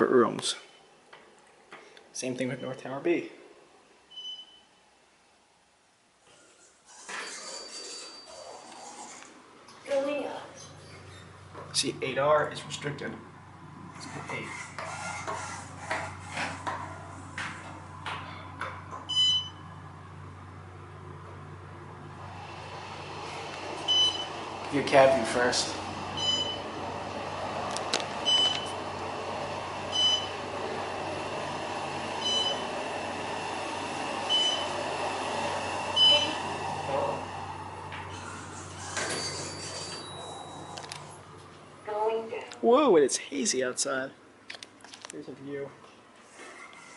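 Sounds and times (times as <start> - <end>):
thin high whine: 6.3 - 10.0, 22.1 - 41.3
steady low hum: 8.8 - 39.1
rising rush of noise: 22.0 - 28.2
elevator doors sliding open: 22.2 - 41.2.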